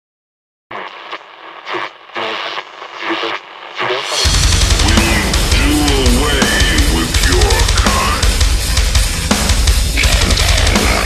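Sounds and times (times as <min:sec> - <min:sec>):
tinny radio sound: 0:00.7 - 0:08.4.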